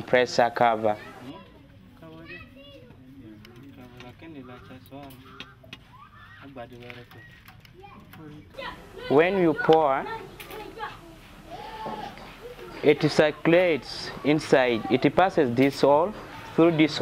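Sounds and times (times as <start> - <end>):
children talking and calling: 0.0 - 17.0.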